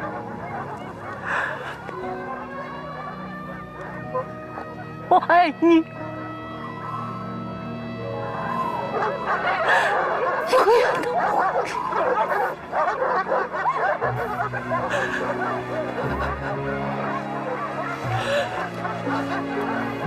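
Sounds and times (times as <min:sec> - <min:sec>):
background music with held notes: 0:00.0 - 0:20.0
dogs barking and yelping: 0:00.0 - 0:20.0.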